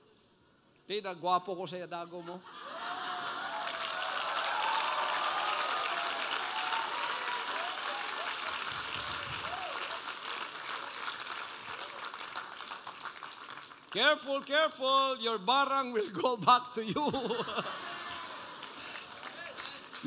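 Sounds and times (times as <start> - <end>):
audience laughing: 2.1 - 3.7, 16.8 - 19.3
audience applauding: 2.7 - 14.6, 17.2 - 20.0.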